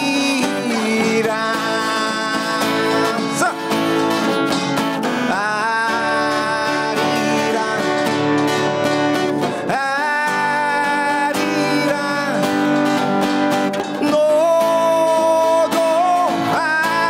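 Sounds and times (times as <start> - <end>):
strummed acoustic guitar: 0.0 - 17.0
traditional drums: 0.0 - 17.0
man singing held notes: 5.2 - 8.4.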